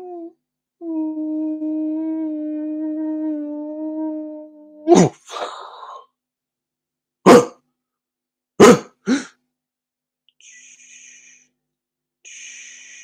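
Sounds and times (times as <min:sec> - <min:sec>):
man's cough-like barks: 0:07.2 - 0:07.6, 0:08.6 - 0:09.4
breathy vocal hiss: 0:12.3 - 0:13.0.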